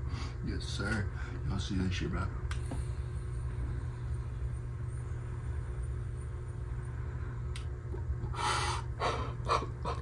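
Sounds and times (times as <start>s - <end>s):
person exhaling hard: 8.3s - 10.0s.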